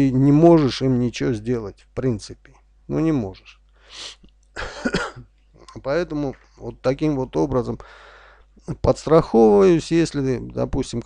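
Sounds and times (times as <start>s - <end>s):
man speaking: 0.0s - 4.1s, 4.8s - 7.9s, 8.6s - 11.0s
man coughing: 4.6s - 5.3s.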